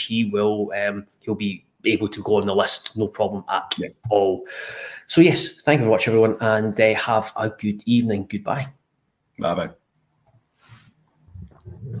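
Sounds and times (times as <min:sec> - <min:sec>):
short breathy hiss: 0:10.6 - 0:11.0.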